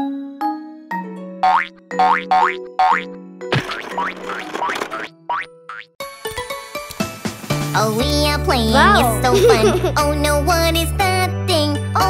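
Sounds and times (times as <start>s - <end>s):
children's background music: 6.0s - 12.0s.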